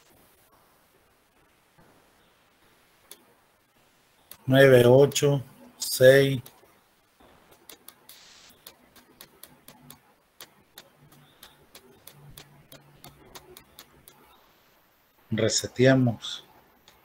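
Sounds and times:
computer mouse clicks: 0:04.3 - 0:04.5, 0:07.4 - 0:14.4.

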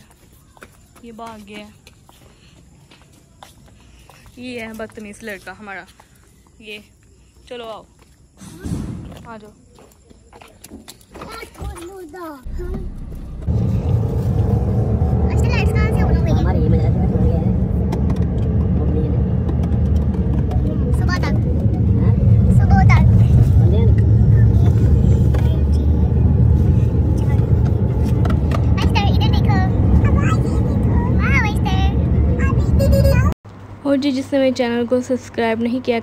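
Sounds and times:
voices: 0:00.0 - 0:36.0
car engine rumble and road noise: 0:11.9 - 0:36.0.

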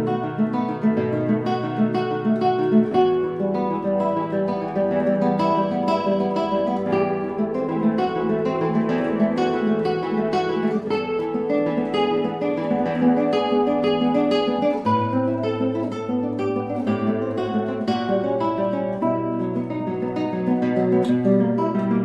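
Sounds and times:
classical guitar fingerstyle: 0:00.0 - 0:22.0.

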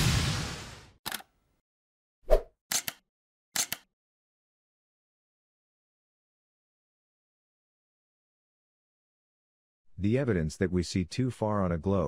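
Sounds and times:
short clicks: 0:01.1 - 0:01.3, 0:02.7 - 0:03.0, 0:03.6 - 0:03.9.

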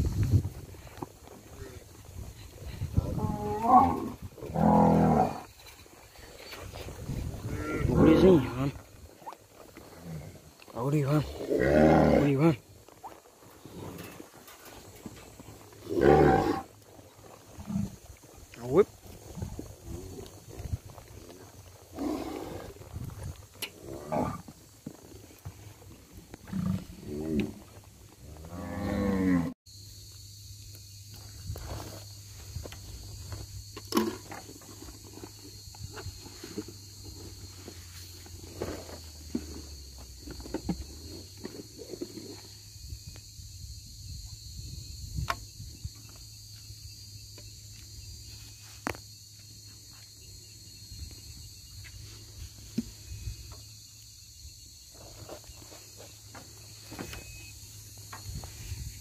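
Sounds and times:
cattle mooing: 0:07.4 - 0:08.4, 0:28.4 - 0:29.5.

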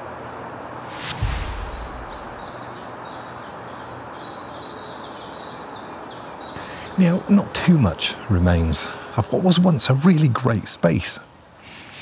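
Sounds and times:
steady outdoor hiss: 0:00.0 - 0:12.0
small birds chirping: 0:00.2 - 0:09.1
low whoosh: 0:00.8 - 0:02.7.

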